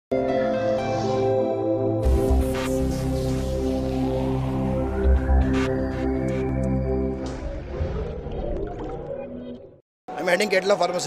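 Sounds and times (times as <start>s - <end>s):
sustained synth tones: 2.0s - 9.8s.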